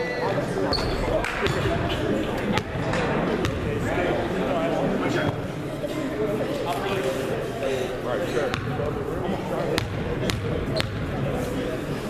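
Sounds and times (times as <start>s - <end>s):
echoing chatter of voices: 0.0s - 12.0s.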